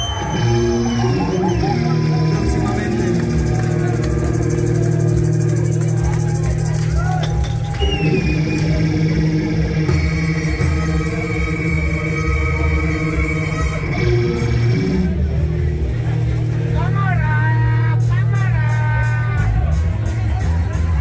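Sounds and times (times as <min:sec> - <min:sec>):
rock band playing live: 0:00.0 - 0:21.0.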